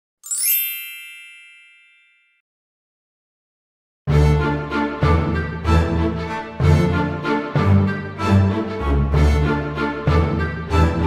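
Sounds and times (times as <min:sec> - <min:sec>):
bright electronic chime: 0:00.2 - 0:02.4.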